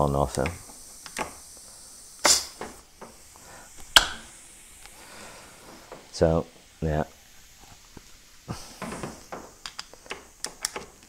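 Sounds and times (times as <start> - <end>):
metal parts clicking and tapping: 8.8 - 11.0.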